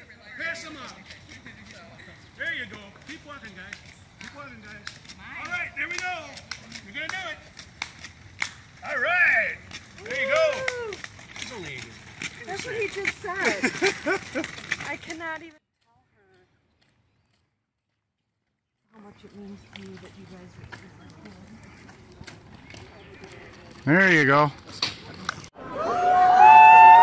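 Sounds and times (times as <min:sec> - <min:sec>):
footsteps on paved path: 0:00.0 - 0:25.6
person laughing: 0:13.4 - 0:14.6.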